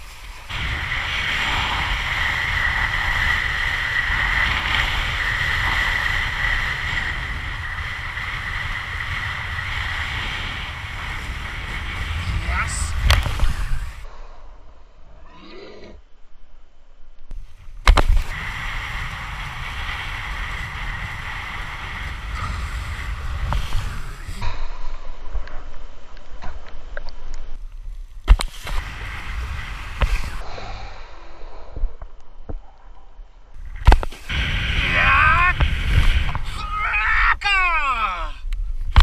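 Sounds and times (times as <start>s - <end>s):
wind buffeting microphone: 0.0s - 14.1s, 17.3s - 25.8s, 28.3s - 30.5s, 33.5s - 37.4s
board hissing across water: 0.5s - 12.3s, 18.2s - 24.4s, 28.5s - 30.5s.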